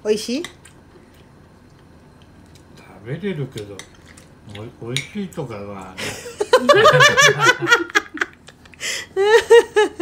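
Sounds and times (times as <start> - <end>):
person laughing hard: 6.0 - 8.4, 9.0 - 10.0.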